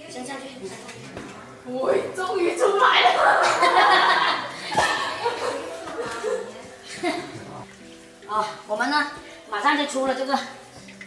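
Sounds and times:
people laughing: 0:02.6 - 0:07.6.

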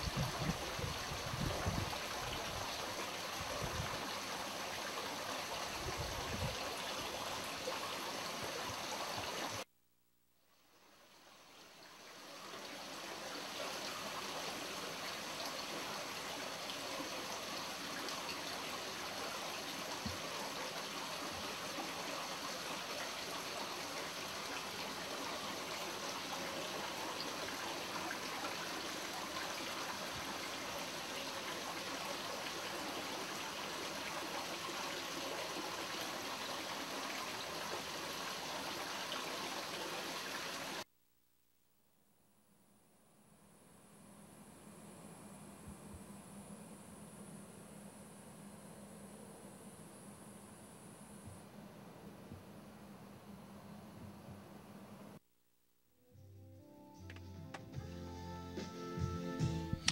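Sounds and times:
running water trickling: 0:11.5 - 0:40.8.

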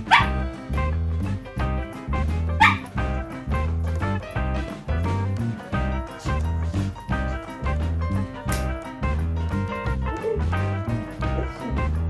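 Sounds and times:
dog barking: 0:00.0 - 0:00.4, 0:02.6 - 0:02.9
background music: 0:00.0 - 0:12.0.

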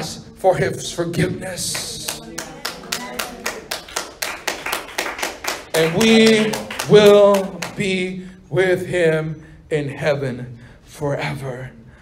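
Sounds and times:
hands clapping: 0:01.6 - 0:08.0.

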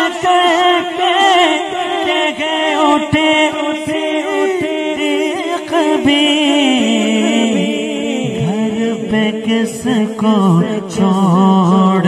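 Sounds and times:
background vocal drone: 0:00.0 - 0:12.0
man singing unaccompanied: 0:00.0 - 0:12.0.

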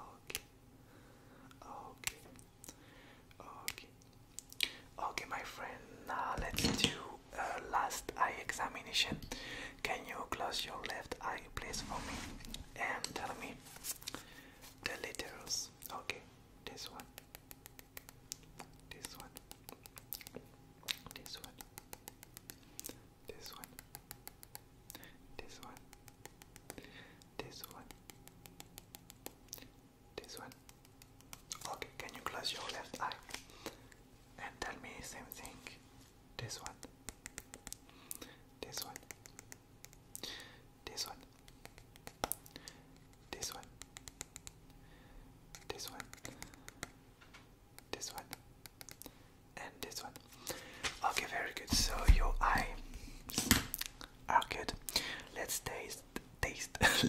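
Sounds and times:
person whispering: 0:00.0 - 0:00.5, 0:01.5 - 0:02.4, 0:03.3 - 0:04.0, 0:04.6 - 0:14.2, 0:14.8 - 0:28.2, 0:29.6 - 0:35.8, 0:36.4 - 0:42.4, 0:43.0 - 0:44.5, 0:45.5 - 0:46.9, 0:47.8 - 0:53.1, 0:54.0 - 0:57.0.

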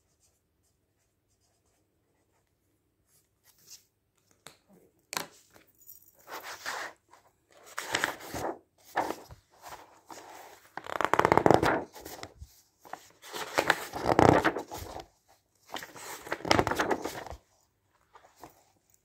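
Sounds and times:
magazine pages rustling: 0:06.4 - 0:19.0.

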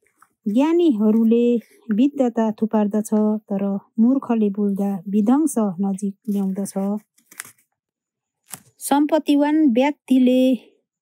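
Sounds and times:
person speaking: 0:00.4 - 0:07.5.

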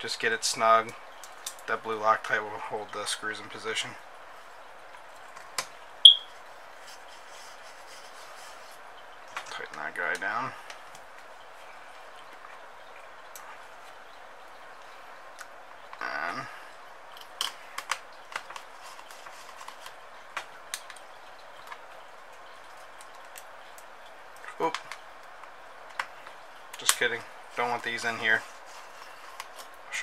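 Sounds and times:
steady hiss: 0:05.6 - 0:30.0.

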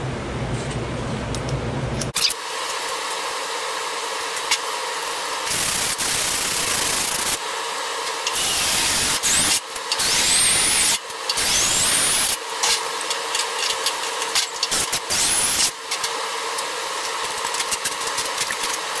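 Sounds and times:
power tool whining on sheet metal: 0:02.2 - 0:19.0.

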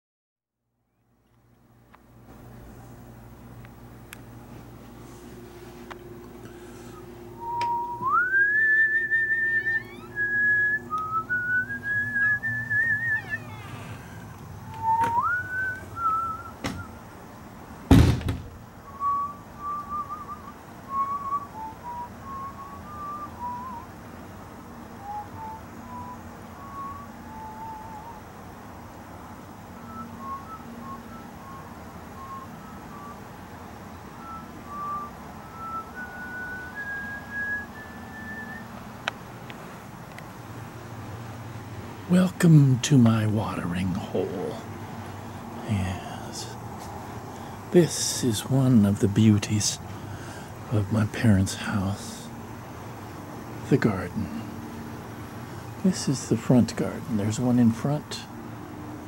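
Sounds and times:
person whistling a tune: 0:06.9 - 0:13.8, 0:14.7 - 0:17.0, 0:18.8 - 0:23.9, 0:25.0 - 0:28.2, 0:29.8 - 0:33.3, 0:34.2 - 0:38.7
heavy thunk: 0:17.9 - 0:18.5.

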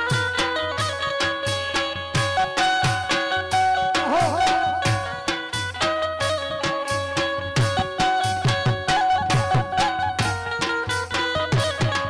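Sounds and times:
drum strokes: 0:00.0 - 0:12.0.

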